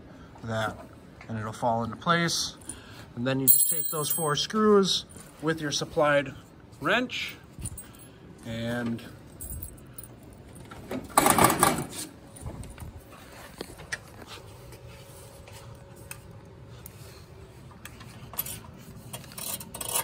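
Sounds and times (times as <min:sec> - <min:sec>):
metal screws and wrench clinking: 0:03.5 - 0:04.5, 0:09.3 - 0:10.3, 0:18.4 - 0:20.0
metal clicks and scrapes: 0:17.8 - 0:20.0.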